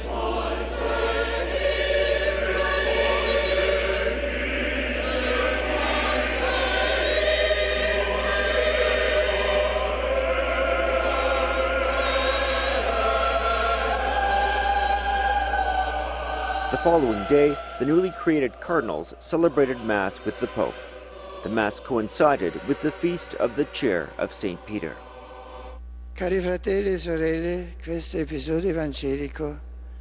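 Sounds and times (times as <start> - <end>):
choir singing liturgical music: 0.0 - 25.8.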